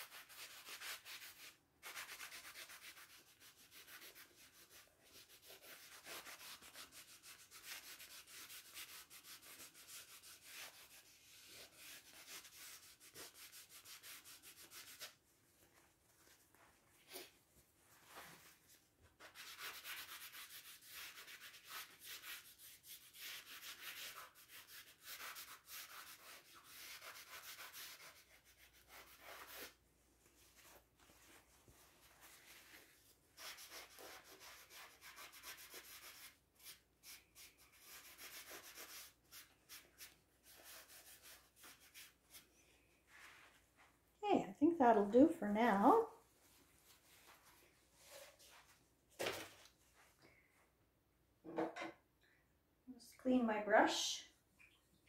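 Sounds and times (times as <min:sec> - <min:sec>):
paper towel rubbing on canvas: 0:00.0 - 0:17.3, 0:17.9 - 0:29.8, 0:30.4 - 0:42.5.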